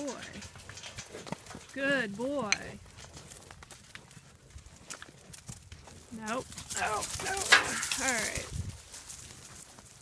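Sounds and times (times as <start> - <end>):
hooves stepping on dirt: 0.0 - 10.0.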